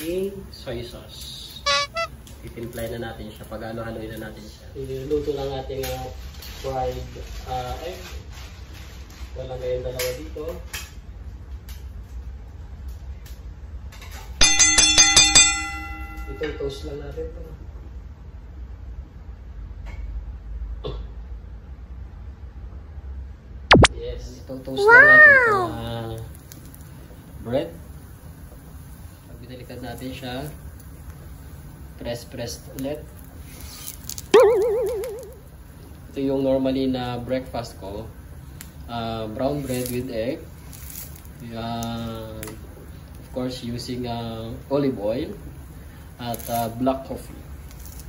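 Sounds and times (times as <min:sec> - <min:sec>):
metal utensil clanging on frying pan: 0:14.4 - 0:16.8
wobbling boing sound effect: 0:34.4 - 0:35.4.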